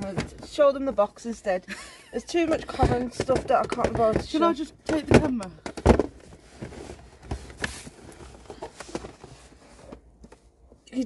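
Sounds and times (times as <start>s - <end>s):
plastic cassette cases knocking: 2.4s - 7.7s
cardboard box being moved: 5.8s - 10.0s.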